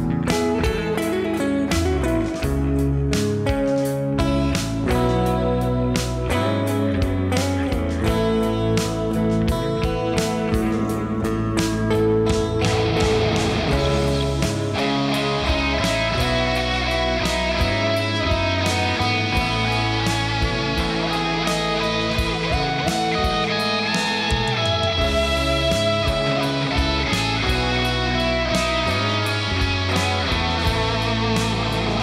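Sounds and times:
backing track with beat and bass: 0.0 - 32.0
distorted electric guitar riff: 0.0 - 32.0.

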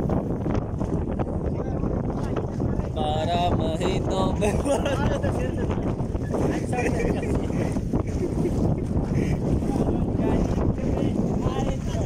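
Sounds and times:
heavy wind on microphone: 0.0 - 12.0.

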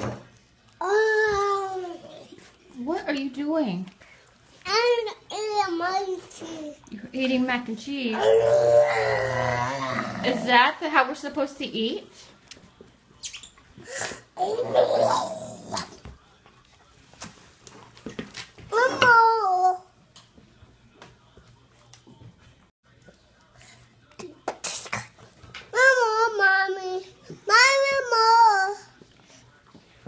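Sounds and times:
boy's rough drawn-out vocal noise: 8.2 - 10.4.

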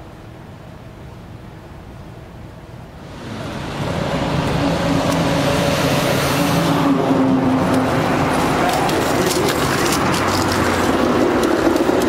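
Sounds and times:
vehicle engine and tyre noise: 0.2 - 12.0.

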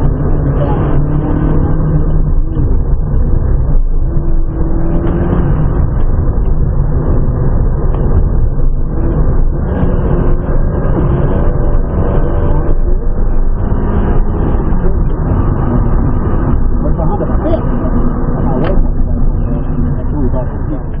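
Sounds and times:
car engine accelerating: 0.0 - 21.0
road and tyre rumble: 0.0 - 21.0.

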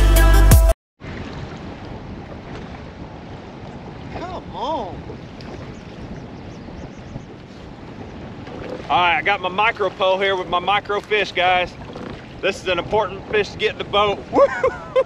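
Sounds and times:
choppy water: 1.0 - 15.0
wind buffeting microphone: 1.0 - 15.0.

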